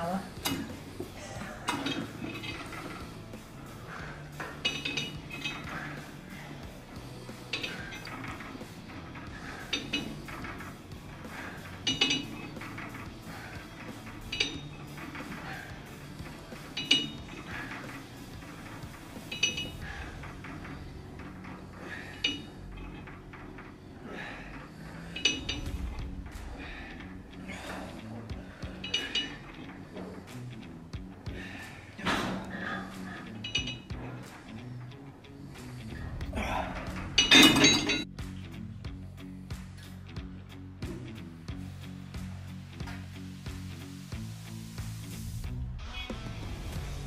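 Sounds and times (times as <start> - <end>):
background music: 0.0 - 47.0
metal gym weights clinking: 4.4 - 6.0, 7.5 - 10.7, 11.3 - 24.0, 24.9 - 25.9, 28.6 - 30.1, 32.0 - 34.6, 36.4 - 38.1.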